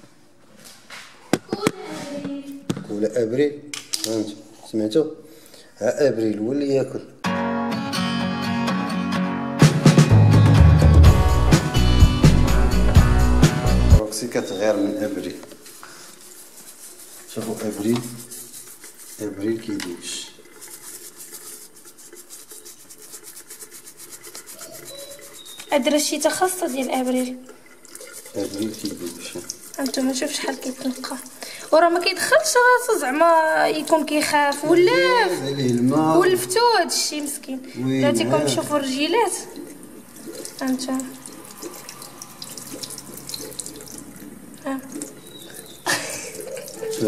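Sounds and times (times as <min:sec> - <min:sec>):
water splashing: 0:14.2 - 0:37.5, 0:38.4 - 0:47.0
toothbrush scrubbing a shell: 0:14.9 - 0:32.9, 0:40.2 - 0:47.0
tap running into sink: 0:17.4 - 0:18.2.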